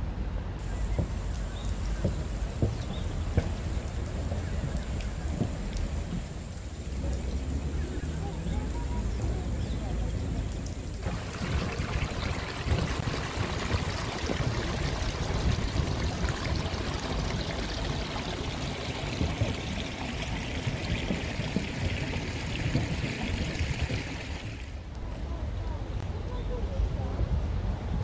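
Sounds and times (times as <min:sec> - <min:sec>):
stream trickling over rocks: 0:00.6 - 0:25.0.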